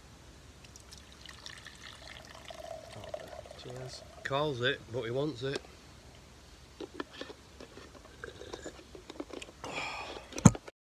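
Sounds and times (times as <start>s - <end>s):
sipping tea: 0.6s - 4.4s.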